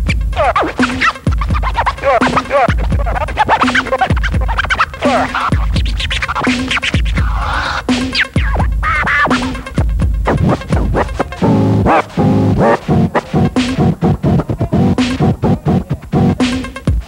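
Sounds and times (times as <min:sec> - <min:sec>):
beat with heavy bass kick: 0:00.0 - 0:17.0
vinyl record scratching: 0:00.0 - 0:17.0.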